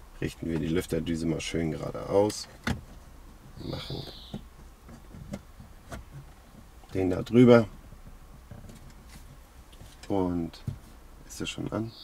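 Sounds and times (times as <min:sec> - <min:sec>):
soft plastic taps: 0:07.7 - 0:10.9.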